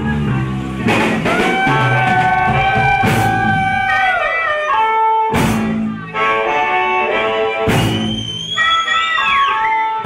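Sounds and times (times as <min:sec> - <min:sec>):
blues band playing: 0:00.0 - 0:10.0
drum and cymbal hit: 0:00.8 - 0:04.0, 0:05.3 - 0:05.9, 0:07.7 - 0:08.2
harmonica note bending: 0:01.2 - 0:10.0.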